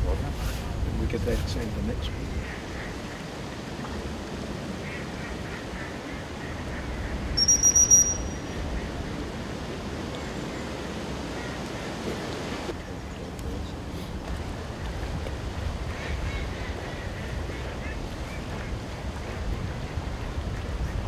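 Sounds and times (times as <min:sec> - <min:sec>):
wind rumble on microphone: 0:00.0 - 0:21.0
dog whistle blast: 0:07.4 - 0:08.4.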